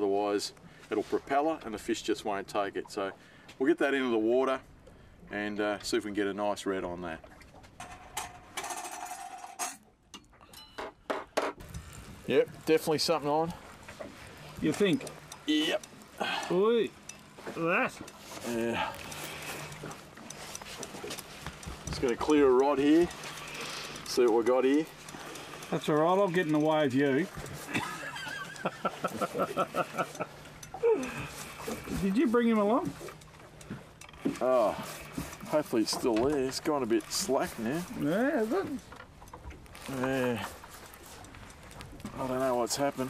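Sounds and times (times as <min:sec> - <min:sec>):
sharp irregular clicks and knocks: 0:13.8 - 0:38.2, 0:38.8 - 0:43.0
man laughing: 0:27.6 - 0:31.3.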